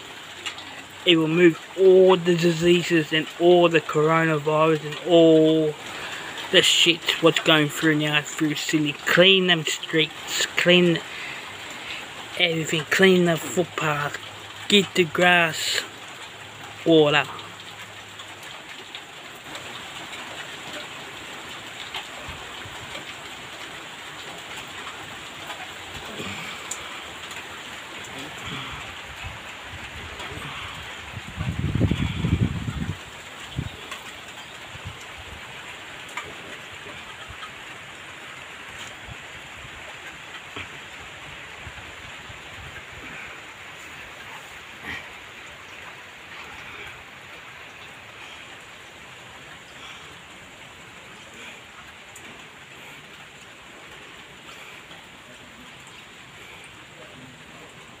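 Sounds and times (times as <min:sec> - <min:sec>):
heavy rain on pavement: 0:00.0 - 0:58.0.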